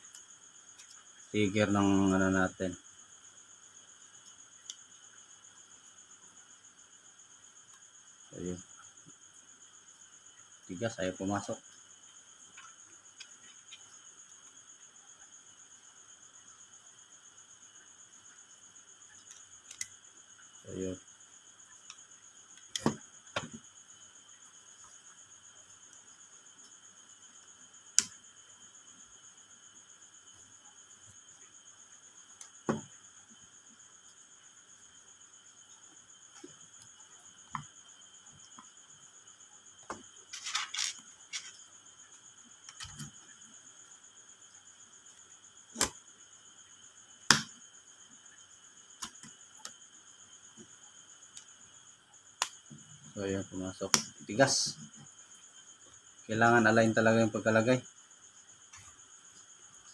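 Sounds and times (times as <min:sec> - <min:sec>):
crickets chirring: 0:00.0 - 0:59.9.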